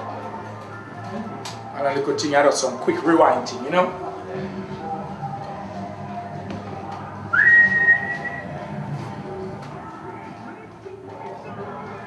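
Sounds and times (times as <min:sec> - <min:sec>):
background music: 0:00.0 - 0:12.0
whistled note sliding up: 0:07.4 - 0:08.5.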